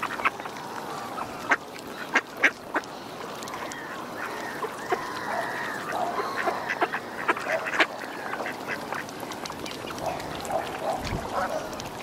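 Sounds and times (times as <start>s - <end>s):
waterfowl calling: 0.0s - 11.9s.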